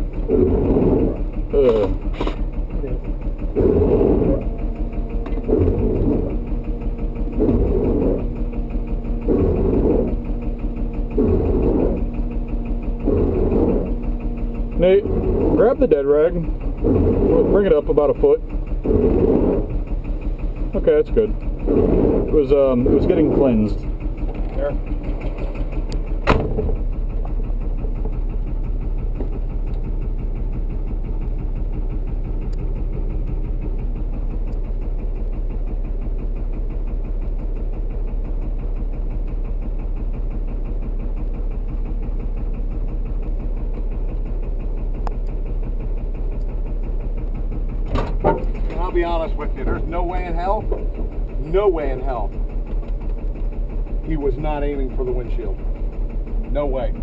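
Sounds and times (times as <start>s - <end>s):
diesel truck engine running: 0.0s - 57.0s.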